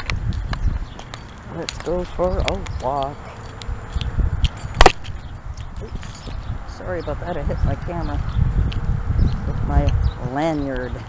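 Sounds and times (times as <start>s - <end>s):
low rumbling handling noise: 0.0s - 11.0s.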